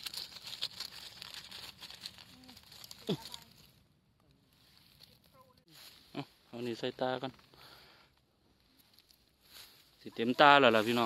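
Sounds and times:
dry leaves rustling and crackling: 0.0 - 3.8, 4.4 - 7.0, 8.8 - 11.0.

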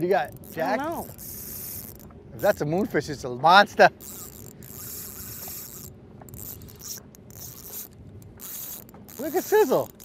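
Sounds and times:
fishing reel whirring: 0.2 - 2.7, 4.0 - 10.0.

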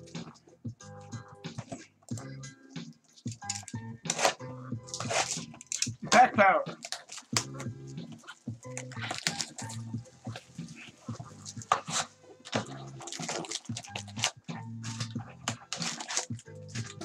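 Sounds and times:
background music: 0.0 - 17.0
foil packs rustling and crinkling: 4.1 - 5.9, 6.8 - 7.4, 8.2 - 17.0.

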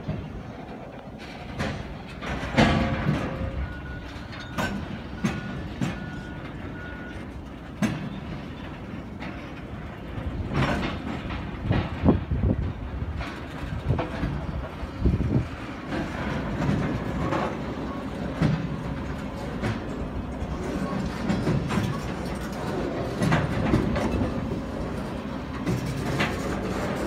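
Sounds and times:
train wheels clanking over rail joints: 0.0 - 27.0.

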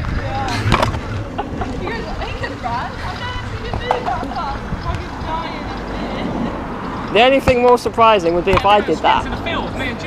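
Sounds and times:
wheels rolling over asphalt: 0.0 - 10.0.

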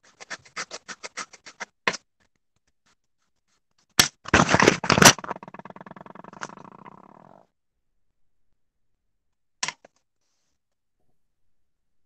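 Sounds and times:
colored pencil scribbling on paper: 0.0 - 1.8.

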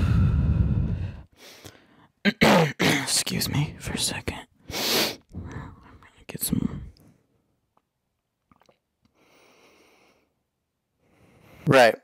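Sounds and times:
man muttering and whispering: 3.0 - 4.5, 5.4 - 7.0.

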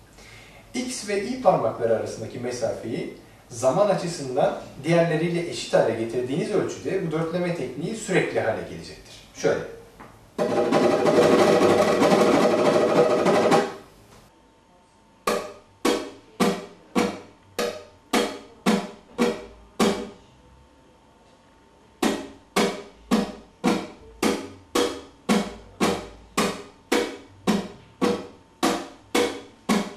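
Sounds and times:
flamenco guitar strumming: 10.4 - 13.9, 15.3 - 20.1, 22.0 - 29.9.

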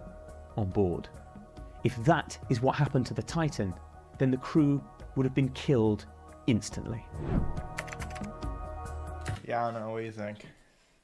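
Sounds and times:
sustained background music: 0.0 - 9.4
sharp clicks: 7.6 - 8.3.

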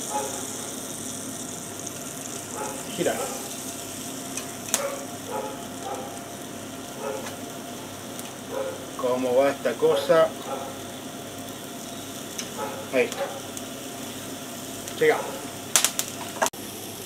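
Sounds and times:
steaks sizzling on a grill: 0.0 - 17.0.

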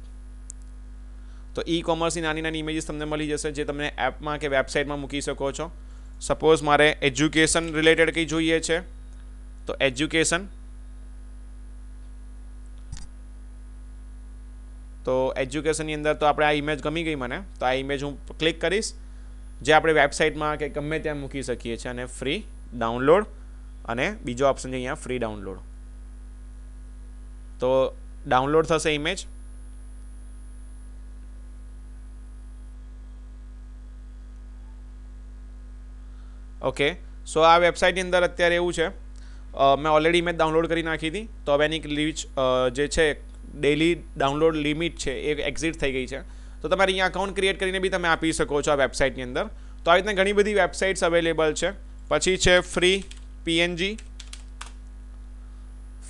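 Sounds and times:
low electrical hum: 0.0 - 56.0
keyboard typing: 52.9 - 53.3, 53.9 - 54.8.

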